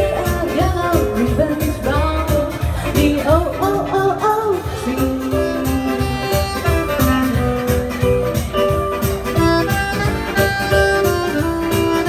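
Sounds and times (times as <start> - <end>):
woman singing: 0.0 - 6.4
pop band playing: 0.0 - 12.0
saxophone playing held notes: 5.1 - 12.0.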